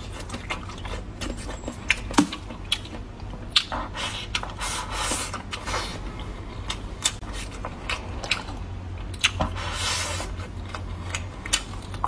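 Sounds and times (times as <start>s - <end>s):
chewing food: 0.0s - 12.0s.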